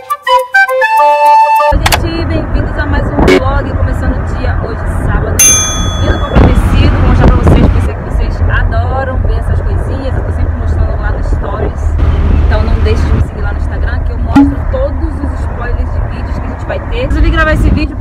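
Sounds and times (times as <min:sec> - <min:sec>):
woman talking: 0:01.8 - 0:18.0
car cabin rumble: 0:05.4 - 0:15.2.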